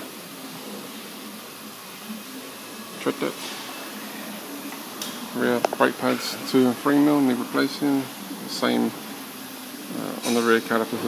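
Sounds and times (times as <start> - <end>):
workshop background hiss: 0.0 - 11.0.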